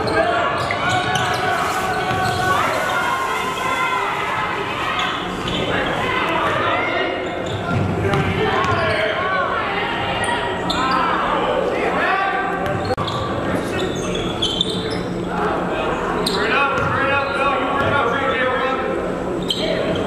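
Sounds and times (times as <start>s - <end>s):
sneakers squeaking on court: 0.0s - 3.0s, 5.0s - 6.0s, 7.2s - 9.2s, 12.6s - 15.2s
players and spectators voices: 0.0s - 20.0s.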